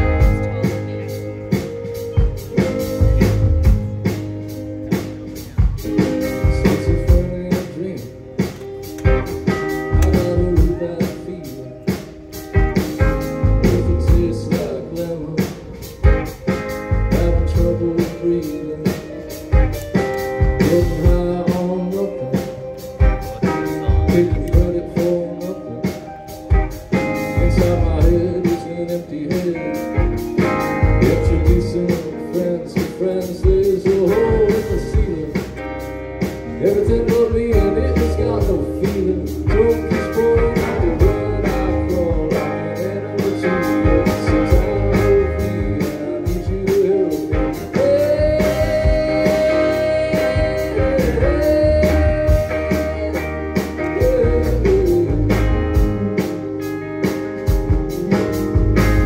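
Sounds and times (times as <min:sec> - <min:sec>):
drum kit beat: 0:00.0 - 0:59.0
electric guitars: 0:00.0 - 0:59.0
keyboard: 0:00.0 - 0:59.0.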